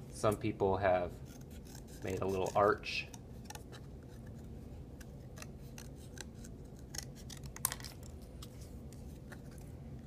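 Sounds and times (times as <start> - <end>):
scissors snipping cardboard: 5.0 - 7.8.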